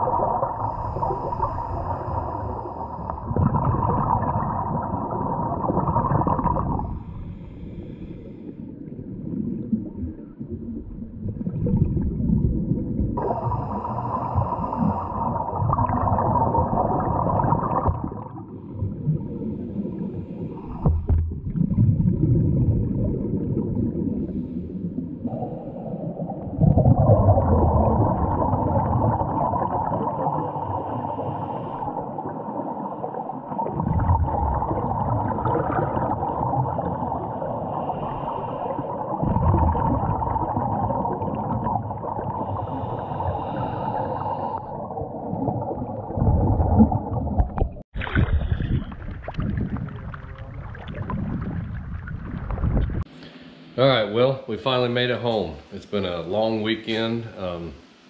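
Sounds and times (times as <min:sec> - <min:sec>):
muffled underwater hiss: 0:00.0 - 0:10.6, 0:13.1 - 0:21.2, 0:23.5 - 0:33.8, 0:35.3 - 0:46.4, 0:47.4 - 0:58.0
exhaled bubbles rumbling: 0:00.0 - 0:53.1
diver breathing through regulator: 0:00.4 - 0:03.4, 0:06.6 - 0:08.8, 0:13.2 - 0:15.6, 0:19.3 - 0:21.1, 0:24.1 - 0:26.2, 0:30.2 - 0:32.1, 0:37.6 - 0:39.1, 0:42.2 - 0:45.0.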